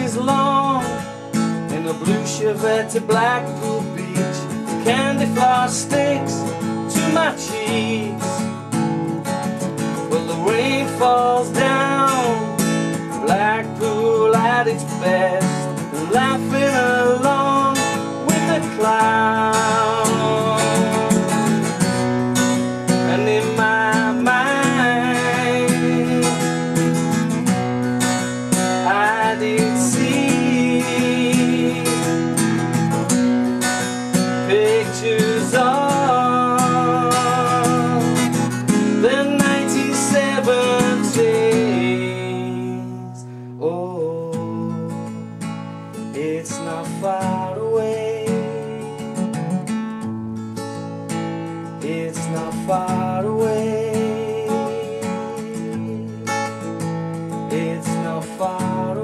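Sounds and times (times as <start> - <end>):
man singing wordless melody: 0.0 - 27.6, 28.6 - 33.1, 34.1 - 49.6, 51.5 - 59.0
acoustic guitar strumming: 0.0 - 59.0.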